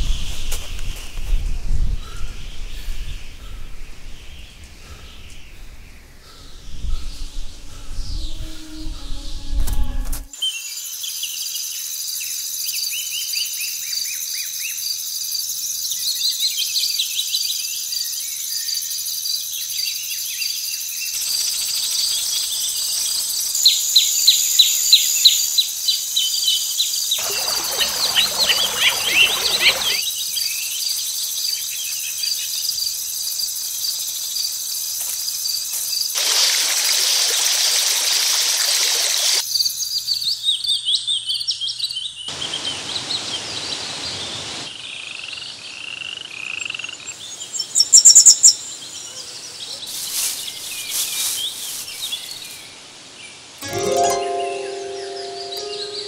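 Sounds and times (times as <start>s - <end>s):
quick bird chirps: 27.2s - 30.0s.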